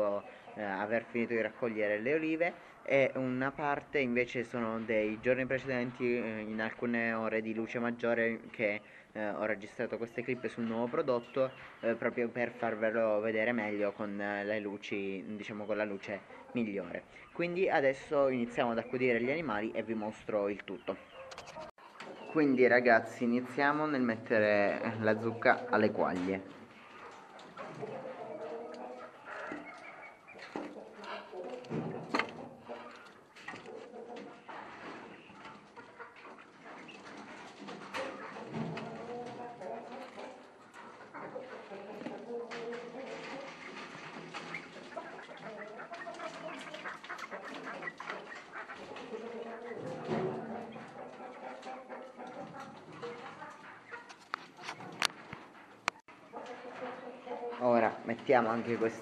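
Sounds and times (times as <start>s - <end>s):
caged poultry calling: 0.0s - 59.0s
wire cages knocking and rattling: 30.4s - 41.4s, 42.0s - 55.5s.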